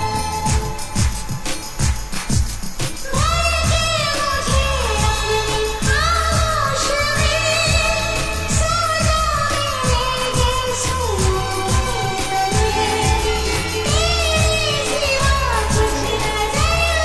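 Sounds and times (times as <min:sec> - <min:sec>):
steady drum beat: 0:00.0 - 0:17.0.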